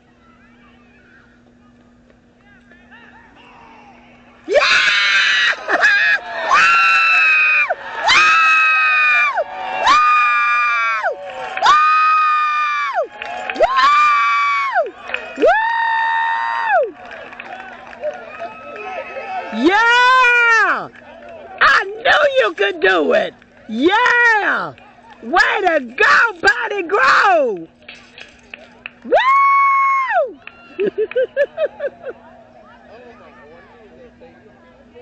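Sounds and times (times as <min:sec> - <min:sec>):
spectator screaming woo: 0:04.5 - 0:16.9, 0:29.1 - 0:30.4.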